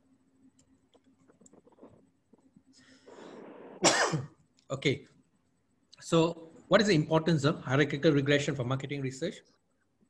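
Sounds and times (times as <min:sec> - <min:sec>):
man coughing: 0:03.8 - 0:04.4.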